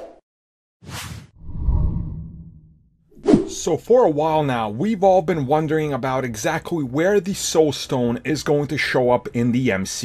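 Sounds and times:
quick whoosh: 3.2s - 3.6s.

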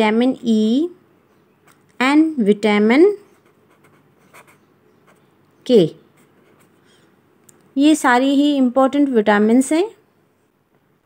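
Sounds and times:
pen scratching on paper: 3.2s - 5.2s, 6.1s - 6.8s.

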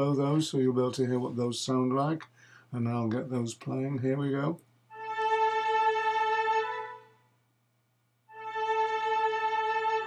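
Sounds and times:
string section chords: 4.9s - 7.2s, 8.3s - 10.0s.

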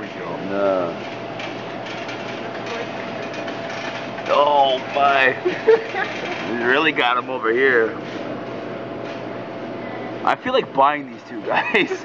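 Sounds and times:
machine hum and hiss: 0.0s - 12.0s.

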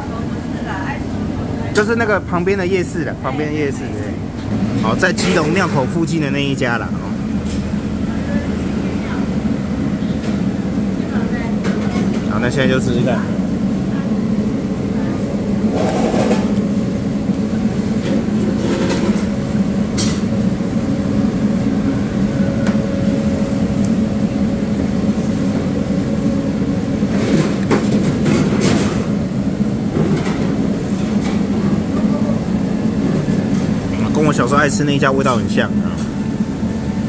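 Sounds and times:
low hum of machinery or traffic: 0.0s - 37.0s.

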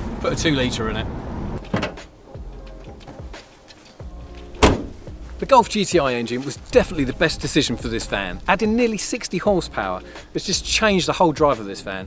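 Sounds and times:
van door shutting: 1.6s - 2.1s, 4.5s - 5.1s.

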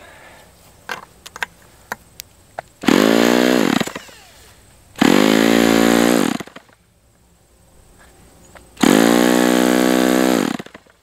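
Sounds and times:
electric starter spinning engine: 2.8s - 4.4s, 5.0s - 6.7s, 8.8s - 10.9s.

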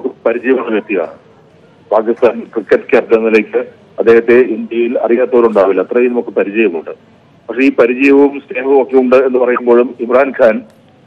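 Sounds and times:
man speaking over telephone: 0.0s - 1.1s, 1.9s - 10.7s.

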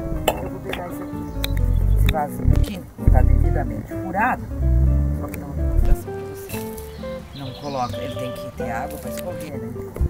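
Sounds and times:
acoustic guitar music: 0.0s - 10.0s
low rumble: 1.4s - 3.8s, 4.4s - 6.0s.

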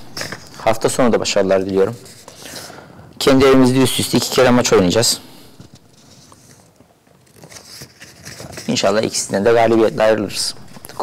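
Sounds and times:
low room noise: 0.0s - 11.0s
paper rustling: 5.7s - 11.0s.

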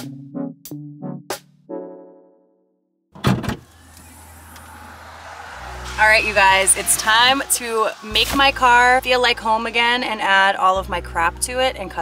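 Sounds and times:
music: 0.0s - 3.0s, 3.8s - 12.0s
car liftgate unlatching clunk: 3.2s - 3.7s
outdoor noise: 3.2s - 9.4s.

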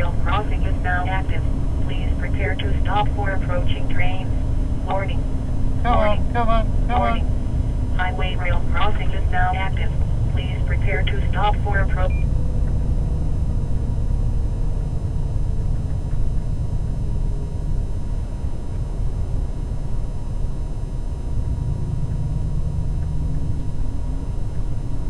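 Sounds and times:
person talking: 0.0s - 5.2s, 5.8s - 7.3s, 8.0s - 12.2s.

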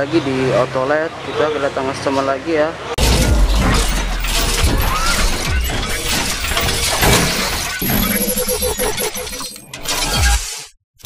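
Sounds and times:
shattering and crashing: 3.0s - 8.2s
sharp hits: 3.0s - 8.6s
music: 3.1s - 8.0s.

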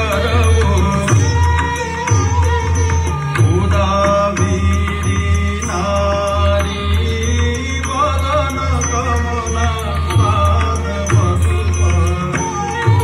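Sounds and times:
percussion strokes: 0.0s - 13.0s.

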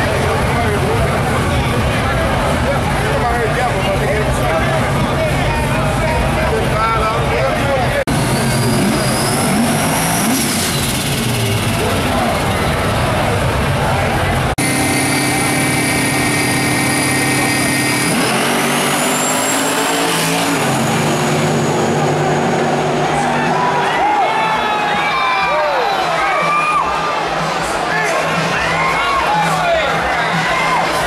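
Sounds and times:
drag car engine revving: 0.0s - 24.6s
high turbo whine: 0.0s - 25.0s
crowd voices: 0.0s - 31.0s.

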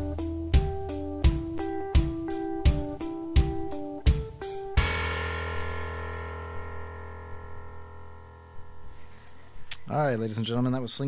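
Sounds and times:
short stabbed band chords: 0.1s - 9.7s
band chord ringing out: 1.4s - 9.6s.

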